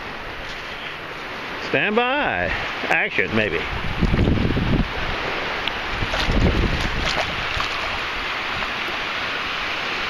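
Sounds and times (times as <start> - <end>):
wind buffeting microphone: 3.5 - 9.2.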